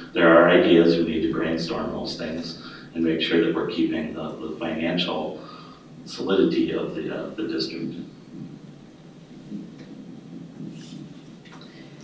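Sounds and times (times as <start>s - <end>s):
microphone handling rumble: 7.4s - 11.6s.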